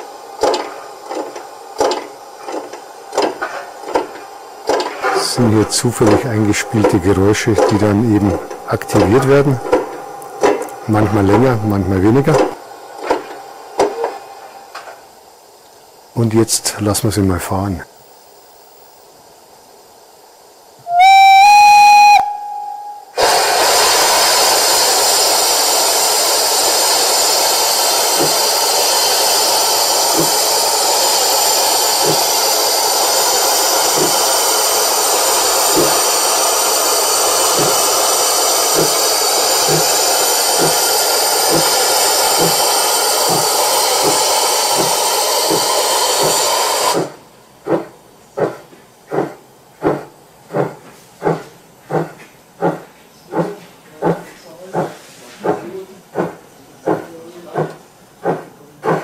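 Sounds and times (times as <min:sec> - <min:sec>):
locomotive exhaust beats: 0:00.0 - 0:14.1, 0:20.8 - 0:59.0
steam hiss: 0:00.0 - 0:59.0
steam whistle: 0:20.8 - 0:47.1.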